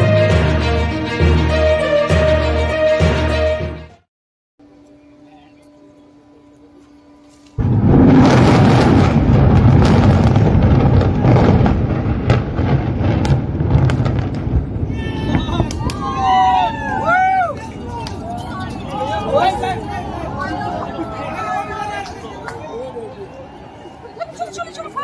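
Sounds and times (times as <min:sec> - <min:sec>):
explosive blast: 0:07.6 - 0:16.2
heavy rumble of collapsing towers: 0:07.6 - 0:23.8
sharp cracks of charges: 0:13.0 - 0:24.0
excited voices shouting: 0:14.9 - 0:25.0.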